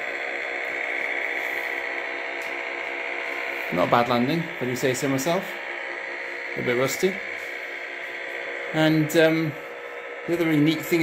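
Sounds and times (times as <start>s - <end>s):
high electronic tone with pulsing: 0.0s - 11.0s.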